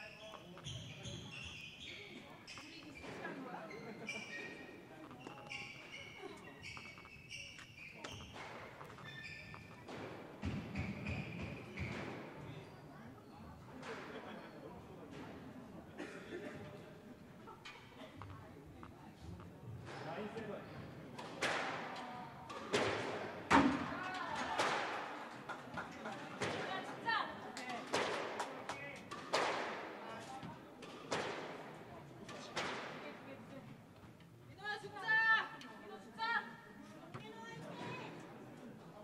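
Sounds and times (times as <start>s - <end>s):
squash ball hits echoing: 5.1s - 12.3s, 21.2s - 25.2s, 27.8s - 30.0s, 30.8s - 33.2s.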